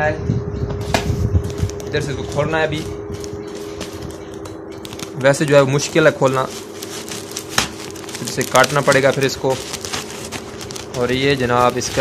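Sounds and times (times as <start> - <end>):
steady low hum: 0.0 - 12.0
plastic sack rustling and scraping: 1.4 - 12.0.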